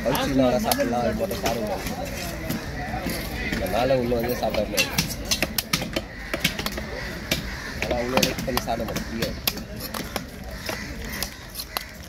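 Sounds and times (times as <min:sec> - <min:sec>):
voices talking: 0:00.0 - 0:12.0
cleaver knocking on chopping block: 0:04.5 - 0:11.9.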